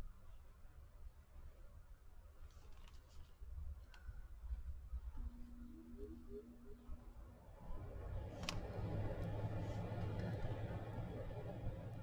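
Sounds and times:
low steady hum: 0:03.6 - 0:12.0.

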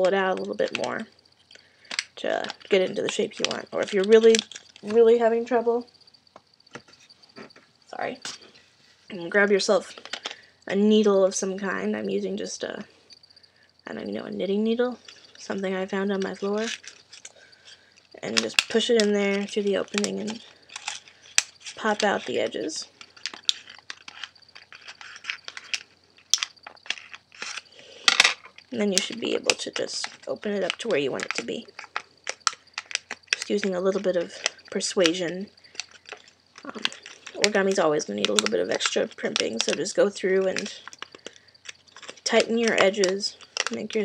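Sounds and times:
paper clicking and rustling: 0:00.0 - 0:05.1, 0:16.2 - 0:44.0.

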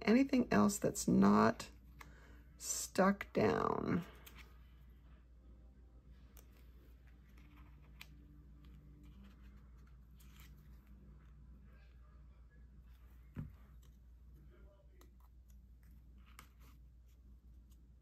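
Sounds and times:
faint low hum: 0:00.0 - 0:18.0.

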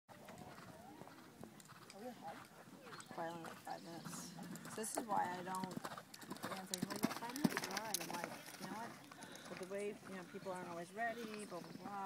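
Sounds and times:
people talking quietly: 0:00.1 - 0:12.0
horse hoofbeats on sand: 0:03.0 - 0:12.0.

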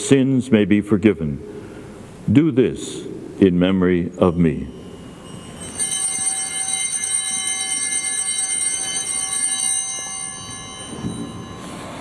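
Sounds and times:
small bells jingling: 0:04.3 - 0:12.0.

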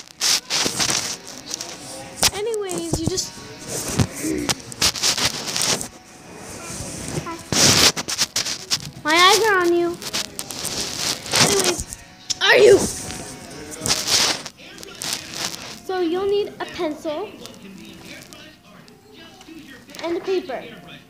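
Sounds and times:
phone being handled: 0:00.2 - 0:06.0.

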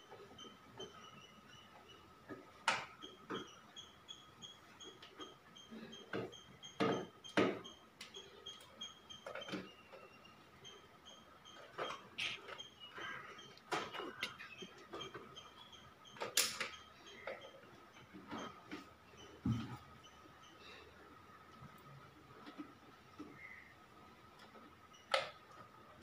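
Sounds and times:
faint high chirping pips: 0:07.6 - 0:17.6.

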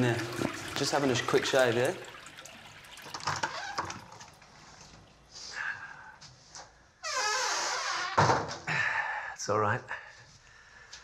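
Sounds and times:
water running into sink: 0:00.0 - 0:05.6.

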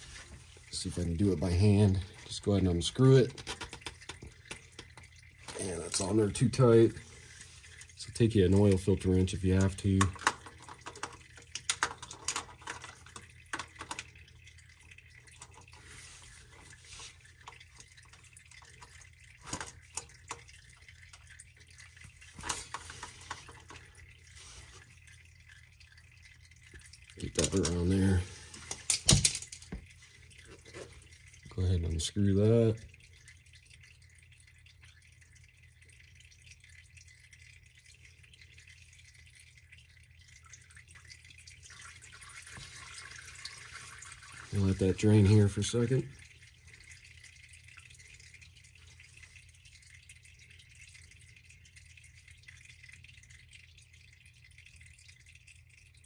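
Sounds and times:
fluid dripping: 0:00.0 - 0:56.0.

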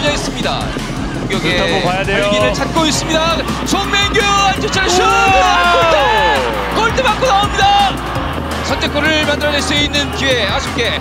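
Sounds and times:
background music: 0:00.0 - 0:11.0
voices: 0:00.0 - 0:11.0.

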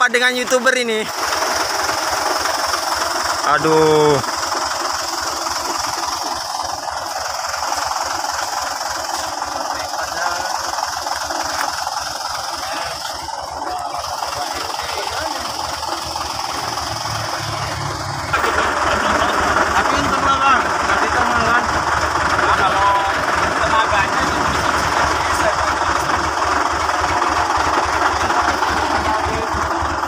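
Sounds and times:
truck diesel engine idling: 0:00.0 - 0:30.0.

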